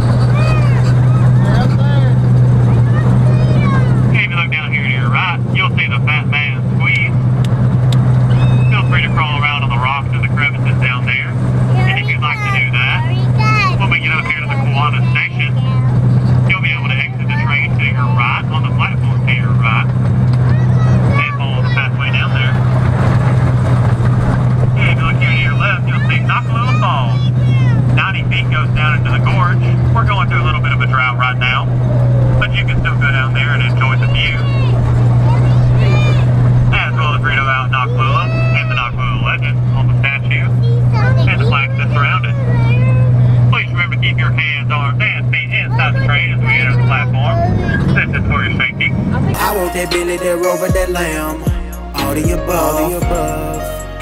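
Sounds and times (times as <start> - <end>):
voices: 0.0 - 7.5, 8.2 - 22.8, 24.7 - 54.0.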